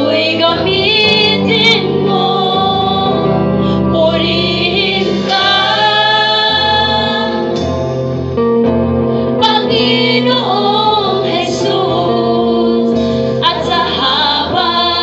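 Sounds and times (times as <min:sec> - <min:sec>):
woman singing into microphone: 0:00.0 - 0:07.6, 0:09.4 - 0:15.0
bass guitar: 0:00.0 - 0:15.0
electric guitar: 0:00.0 - 0:15.0
drums: 0:00.4 - 0:12.2.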